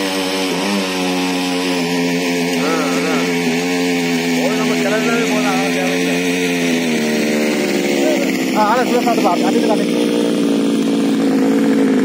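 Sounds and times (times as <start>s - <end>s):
small two-stroke engine idling: 0.0s - 12.0s.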